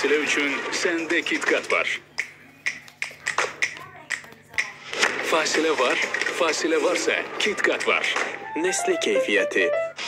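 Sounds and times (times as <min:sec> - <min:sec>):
finger snaps on a beat: 0:02.2 - 0:04.7.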